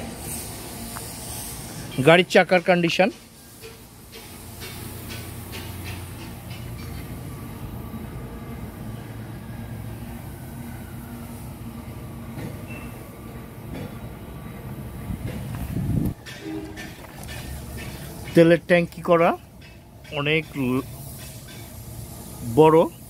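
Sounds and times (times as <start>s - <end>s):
footsteps on gravel: 15.4s - 18.3s.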